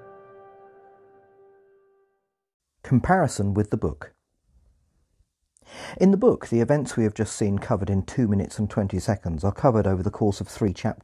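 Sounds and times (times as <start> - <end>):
man breathing in: 5.6 - 6.0.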